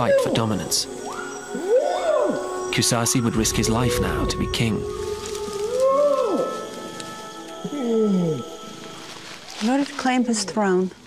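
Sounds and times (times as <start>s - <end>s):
background music: 0.0s - 11.0s
orangutan long call: 1.0s - 2.7s, 3.8s - 6.9s.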